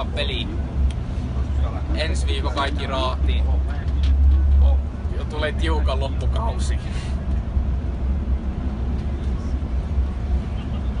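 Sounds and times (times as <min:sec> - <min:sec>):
coach bus engine rumble: 0:00.0 - 0:11.0
road noise: 0:00.0 - 0:11.0.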